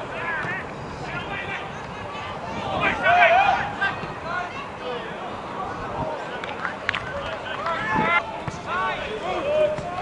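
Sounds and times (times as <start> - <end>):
players and spectators shouting: 0.0 - 6.4, 7.1 - 10.0.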